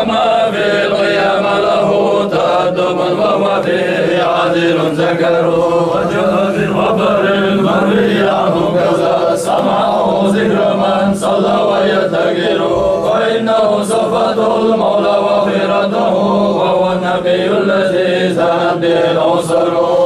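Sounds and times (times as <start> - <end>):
men chanting in unison: 0.0 - 20.0.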